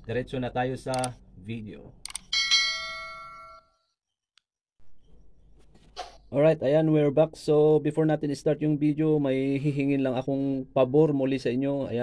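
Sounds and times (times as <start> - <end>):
notification bell ding: 2.4 - 3.8.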